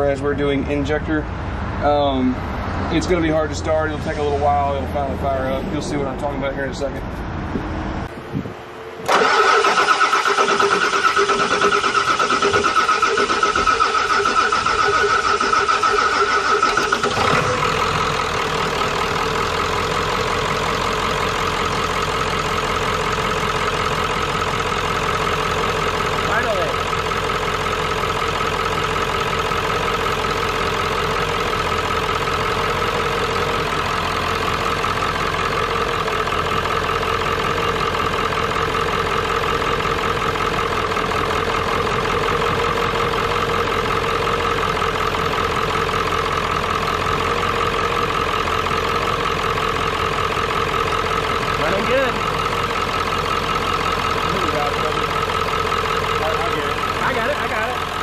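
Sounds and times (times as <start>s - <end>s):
diesel engine idling: 0.0s - 7.2s, 8.0s - 58.0s
starter motor cranking engine: 9.0s - 18.4s.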